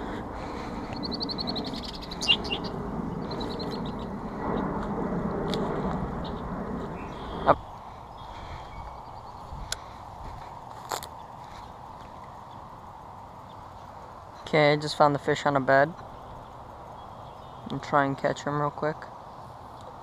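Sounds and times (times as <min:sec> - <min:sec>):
birds calling: 0:00.0 - 0:04.7, 0:06.1 - 0:14.5, 0:15.9 - 0:17.9
steady rustling: 0:00.0 - 0:14.5.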